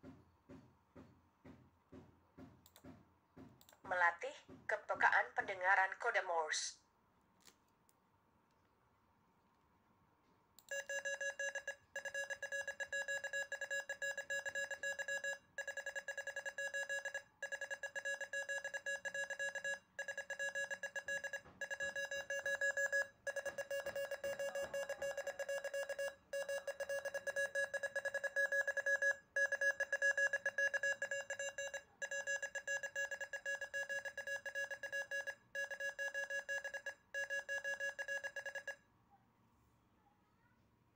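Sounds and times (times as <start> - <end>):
morse code beeps: 10.7 - 38.8.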